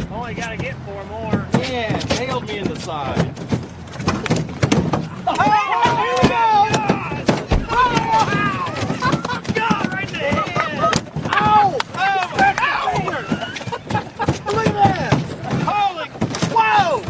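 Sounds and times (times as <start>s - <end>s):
fish slapping against metal boat: 0.4s - 17.0s.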